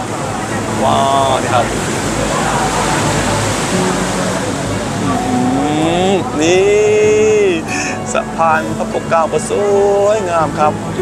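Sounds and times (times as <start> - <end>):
boat engine and water rushing: 0.0 - 11.0
drawn-out voice rising in pitch: 5.0 - 6.6.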